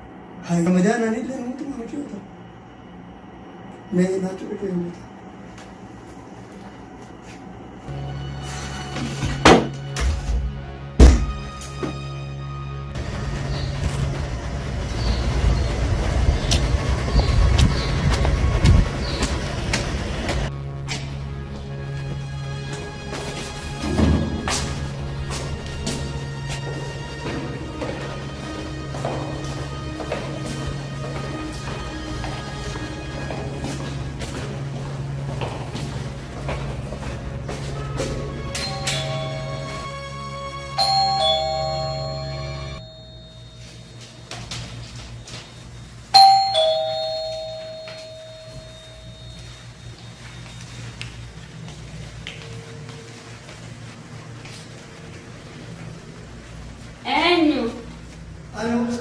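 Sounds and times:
background music: 7.9s - 44.1s
low street rumble: 12.9s - 43.2s
doorbell ding-dong chime: 38.6s - 40.0s, 40.8s - 44.1s, 46.2s - 49.6s.

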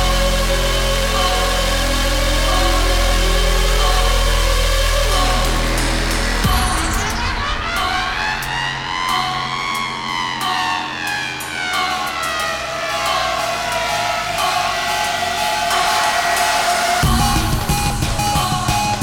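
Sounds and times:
siren-like synth sweep: 0.0s - 19.0s
steady held synth tone: 0.0s - 19.0s.

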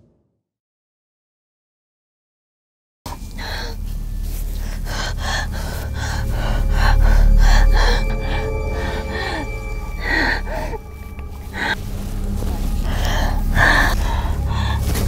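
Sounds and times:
ominous background music: 3.1s - 15.0s.

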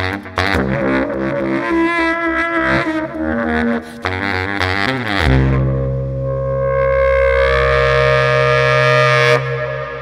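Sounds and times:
sustained low bass tone: 4.9s - 10.0s.

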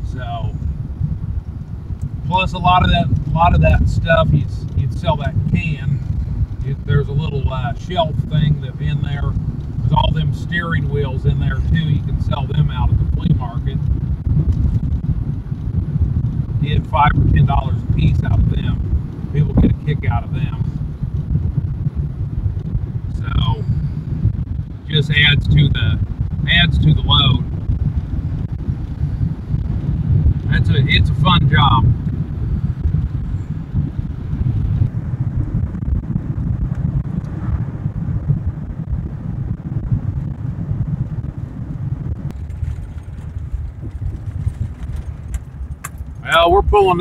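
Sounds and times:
truck engine and road rumble: 0.0s - 47.0s
wind buffeting microphone: 0.0s - 47.0s.

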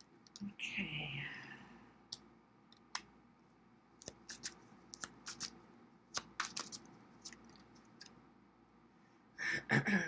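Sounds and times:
cards clicking on table: 6.1s - 7.4s.

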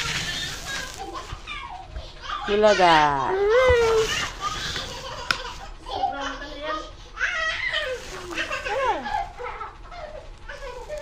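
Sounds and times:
animal call sliding down: 0.0s - 1.2s.

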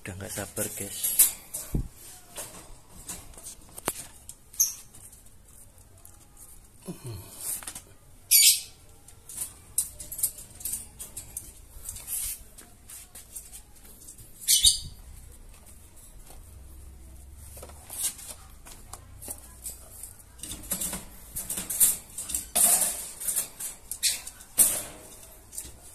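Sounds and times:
rabbits scuffling: 0.0s - 8.2s, 8.8s - 25.9s
rabbits rustling and scratching: 0.0s - 25.9s.

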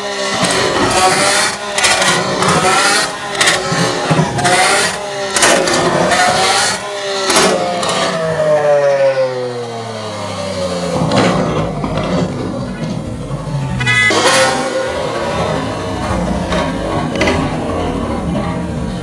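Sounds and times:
sports car engine revving: 0.0s - 19.0s
exhaust bangs: 9.8s - 19.0s.

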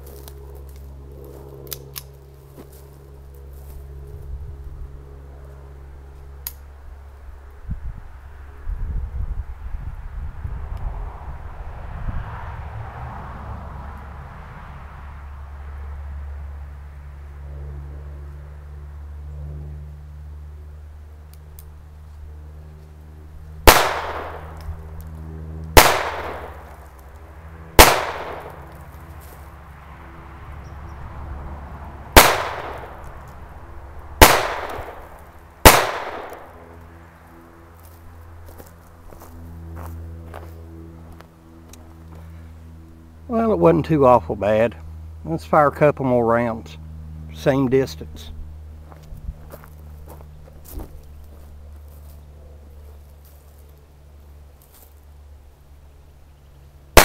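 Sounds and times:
pistol shots: 23.7s - 24.6s, 25.8s - 26.7s, 27.8s - 28.6s, 32.2s - 33.0s, 34.2s - 36.5s.

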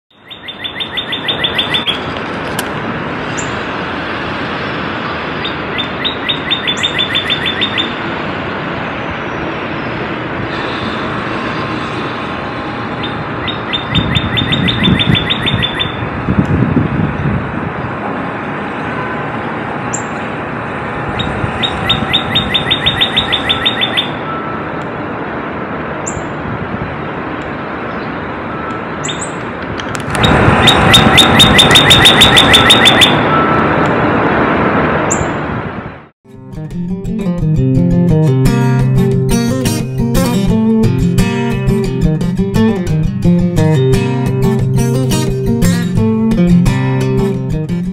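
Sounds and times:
bird singing repeated notes: 0.1s - 2.2s, 5.3s - 8.1s, 13.0s - 16.0s, 19.9s - 20.2s, 21.2s - 24.8s, 27.9s - 29.4s, 30.1s - 33.6s, 37.2s - 47.9s.

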